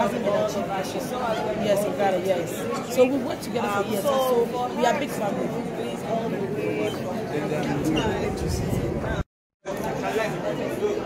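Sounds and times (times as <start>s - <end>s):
people chattering: 0.0s - 11.0s
people talking at once: 0.0s - 11.0s.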